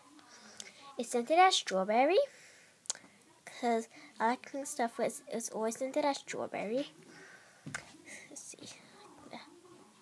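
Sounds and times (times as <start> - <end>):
faint whispering: 0.0 - 1.0, 6.8 - 10.0.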